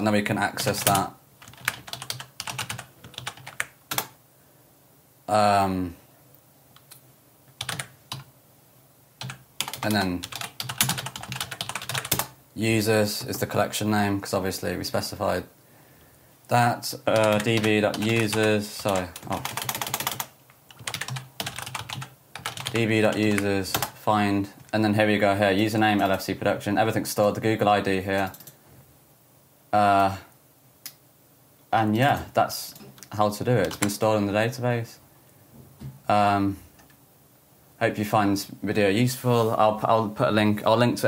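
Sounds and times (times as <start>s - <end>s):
typing on computer keyboard: 0.7s - 4.1s, 7.6s - 8.3s, 9.2s - 12.4s, 17.2s - 24.0s, 28.2s - 28.6s, 33.6s - 34.0s.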